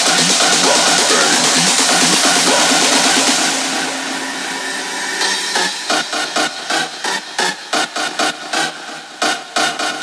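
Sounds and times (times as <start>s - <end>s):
electronic dance music: 0.0s - 10.0s
rhythmic noise pulses: 0.0s - 10.0s.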